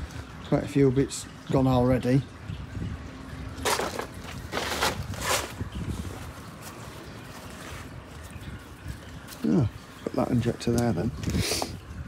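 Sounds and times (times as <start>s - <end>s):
wind rumble on microphone: 1.7s - 9.8s, 10.7s - 12.0s
person shifting and rustling: 3.6s - 9.4s.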